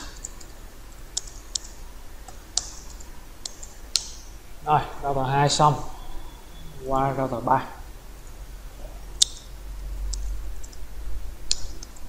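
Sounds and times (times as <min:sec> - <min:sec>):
keyboard typing clicks: 0:00.0 - 0:04.2, 0:11.5 - 0:12.0.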